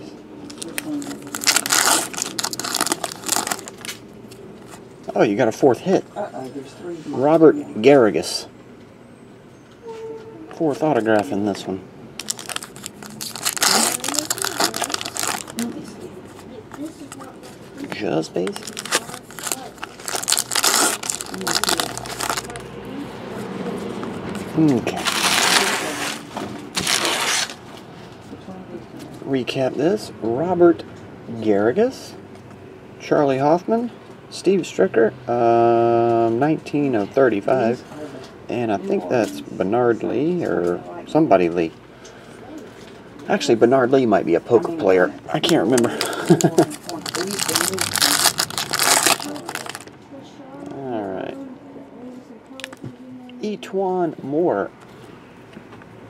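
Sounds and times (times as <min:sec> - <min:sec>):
card packaging rustling: 0:00.5 - 0:04.0, 0:12.2 - 0:15.8, 0:18.4 - 0:22.6, 0:24.8 - 0:27.6, 0:45.4 - 0:49.9
foil wrapper crinkling: 0:00.5 - 0:04.0, 0:12.2 - 0:15.8, 0:18.4 - 0:22.6, 0:24.9 - 0:26.2, 0:45.4 - 0:49.9.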